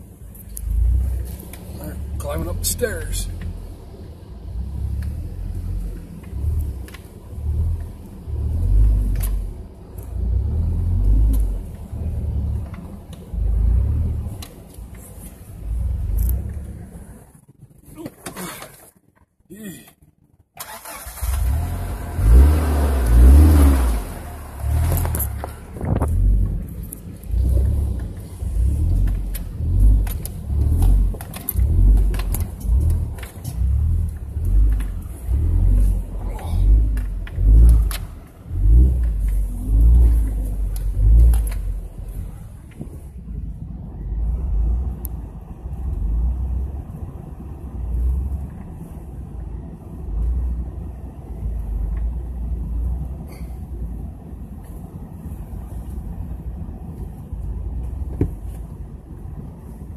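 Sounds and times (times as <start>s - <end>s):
vehicle engine on rocky trail: 0.0s - 59.9s.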